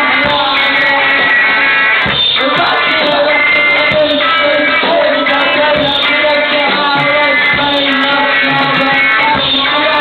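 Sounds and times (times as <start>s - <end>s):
punk rock band playing live: 0.0s - 10.0s.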